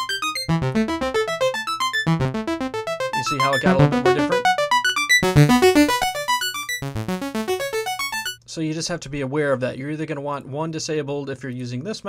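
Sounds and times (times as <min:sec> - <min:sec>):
synthesizer fast note sequence: 0:00.0 - 0:08.4.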